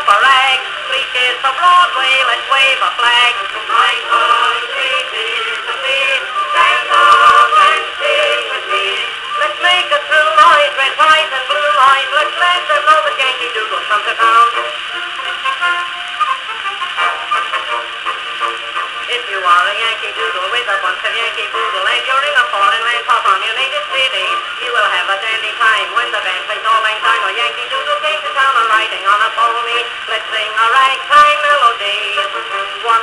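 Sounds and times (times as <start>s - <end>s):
band music on old phonograph: 0.0s - 33.0s
record surface crackle: 0.0s - 33.0s.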